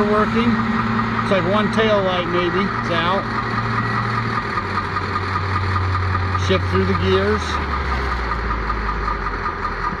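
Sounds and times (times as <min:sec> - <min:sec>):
wheel loader diesel engine running: 0:00.0 - 0:10.0.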